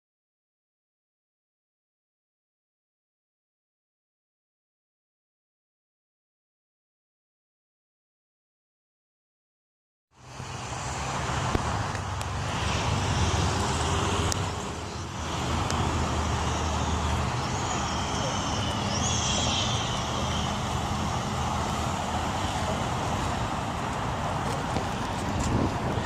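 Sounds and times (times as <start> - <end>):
traffic noise: 10.1 - 26.0
faint voices: 14.4 - 26.0.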